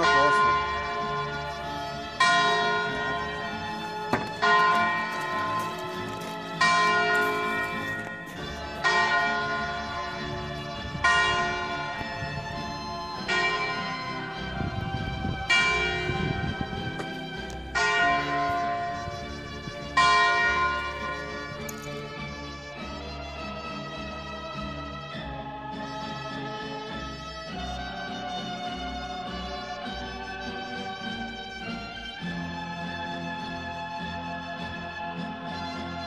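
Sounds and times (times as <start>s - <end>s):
church bell tolling: 0.0s - 22.8s.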